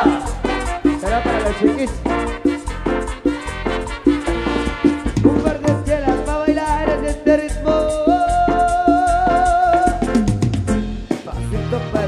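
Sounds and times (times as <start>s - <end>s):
live band playing latin dance music: 0.0s - 12.0s.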